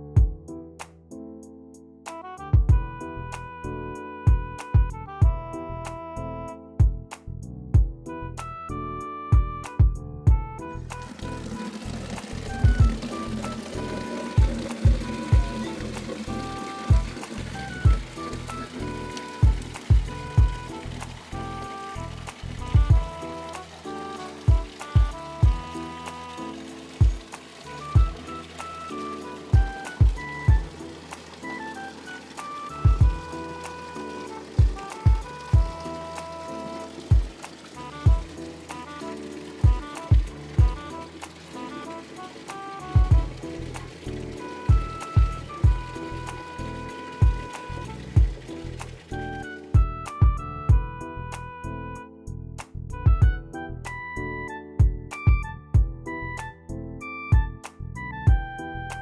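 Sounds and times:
deep thudding beat: 0.0 - 0.5, 2.6 - 3.0, 4.3 - 5.5, 6.8 - 8.1, 9.3 - 21.2, 22.0 - 23.2, 24.4 - 25.8, 27.0 - 28.3, 29.4 - 30.8, 32.8 - 33.4, 34.6 - 35.9, 37.1 - 38.4, 39.6 - 41.0, 43.0 - 44.0, 44.7 - 46.1, 47.2 - 49.0, 49.8 - 51.0, 52.9 - 53.6, 54.8 - 56.1, 57.3 - 57.6, 58.3 - 58.6
held keyboard notes: 0.0 - 7.2, 7.8 - 59.0.

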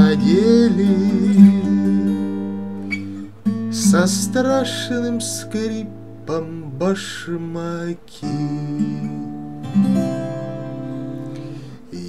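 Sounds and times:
twelve-string acoustic guitar strumming: 0.0 - 12.0.

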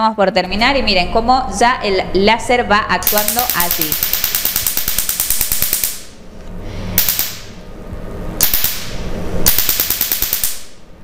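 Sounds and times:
laser firing snapping clicks: 3.0 - 6.1, 7.0 - 7.5, 8.4 - 10.8.

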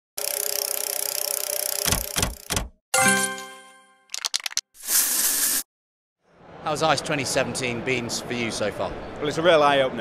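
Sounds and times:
slot machine reels spinning: 0.2 - 2.5.

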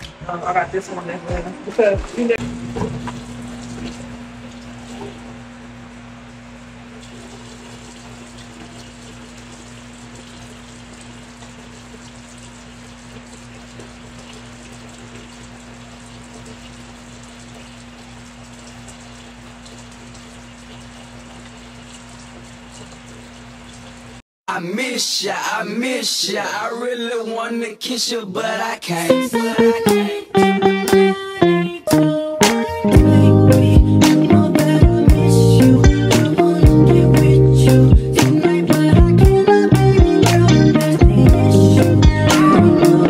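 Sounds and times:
tap water running into sink: 2.0 - 24.2.

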